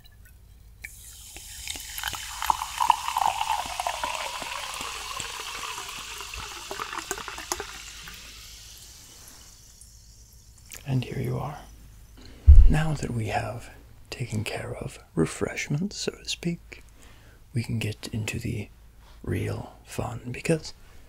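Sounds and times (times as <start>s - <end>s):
water pouring into a glass: 0.9s - 10.7s
fizzing bubbles crackling: 0.9s - 10.8s.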